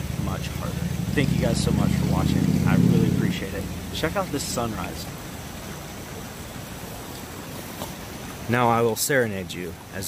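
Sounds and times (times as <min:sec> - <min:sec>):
river rushing over rocks: 0:00.0 - 0:10.0.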